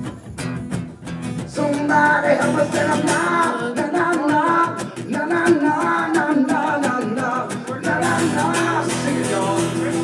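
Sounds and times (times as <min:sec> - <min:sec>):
strummed acoustic guitars: 0:00.0 - 0:10.0
wordless singing: 0:01.5 - 0:10.0.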